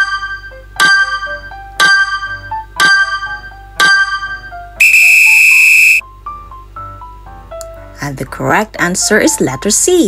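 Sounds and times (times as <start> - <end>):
steady high tone: 4.8 - 6.0.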